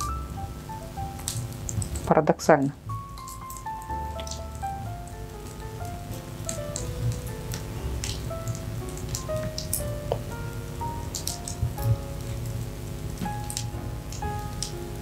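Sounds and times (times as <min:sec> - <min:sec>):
soft background music: 0:00.0 - 0:15.0
wood fire crackling: 0:00.0 - 0:15.0.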